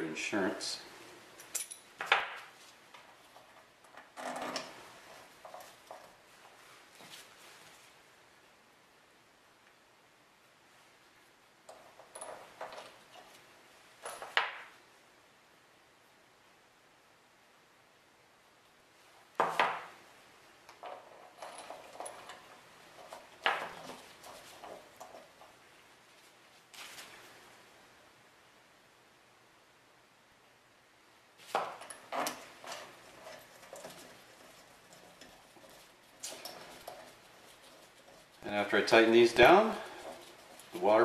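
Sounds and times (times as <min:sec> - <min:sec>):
metal bolts clinking and rattling: 0:01.4 - 0:06.5, 0:11.7 - 0:13.4, 0:14.0 - 0:14.7, 0:20.7 - 0:25.6, 0:31.5 - 0:41.0
handling noise: 0:01.4 - 0:08.0, 0:11.7 - 0:14.8, 0:19.3 - 0:27.4, 0:31.4 - 0:41.0
metal bolts clicking: 0:20.7 - 0:25.5.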